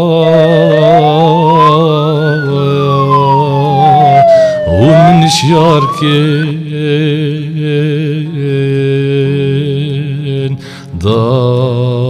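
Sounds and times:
wavering held musical note: 0.0 - 6.7
electronic siren-like wail: 0.0 - 6.9.

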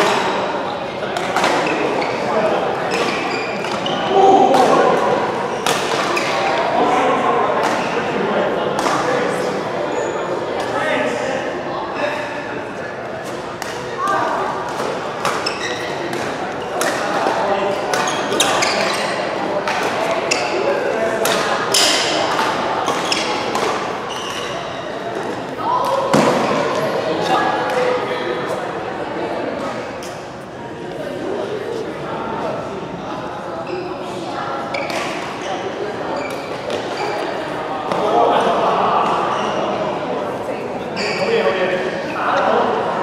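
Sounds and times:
shoes squeaking on court: 2.9 - 4.2, 15.2 - 17.1, 17.9 - 20.7, 22.8 - 25.4, 34.7 - 37.4, 40.9 - 41.5
rackets hitting shuttlecock: 13.2 - 18.9.

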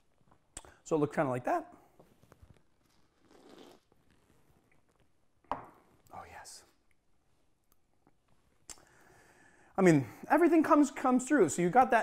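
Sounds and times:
glass set down on wood: 5.5 - 5.8.

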